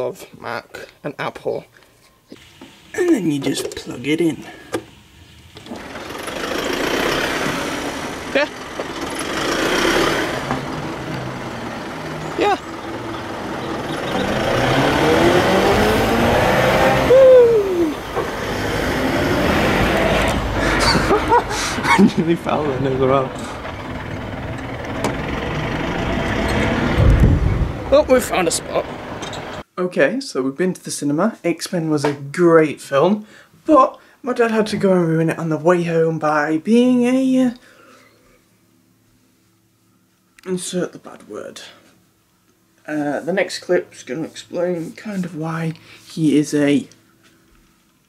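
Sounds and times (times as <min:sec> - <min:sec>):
road noise: 0:02.3 - 0:29.6
lorry engine running: 0:04.8 - 0:17.2, 0:17.8 - 0:29.6
brief squeaks: 0:29.2 - 0:29.6.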